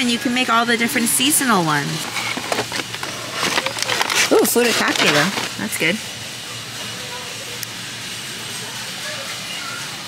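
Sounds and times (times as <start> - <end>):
distant voices: 0.0 - 10.0
store background hiss: 0.0 - 10.0.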